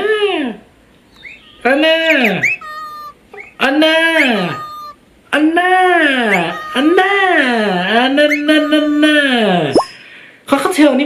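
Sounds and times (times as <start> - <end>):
meow-like calls: 1.2 - 5.0, 6.2 - 9.4.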